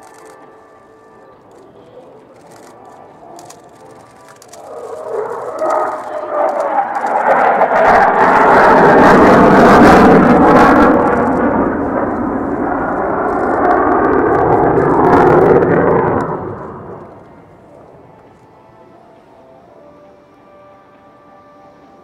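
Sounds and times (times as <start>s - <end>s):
jet engines flying past: 0.0s - 20.6s.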